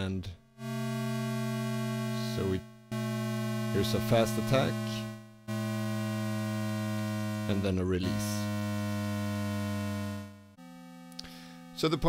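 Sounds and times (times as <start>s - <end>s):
buzzy synthesizer tone: 0.6s - 12.0s.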